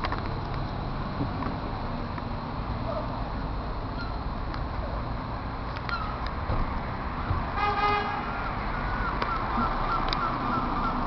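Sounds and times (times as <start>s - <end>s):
city traffic rumble: 0.0s - 11.0s
short vehicle horn toot: 7.6s - 8.2s.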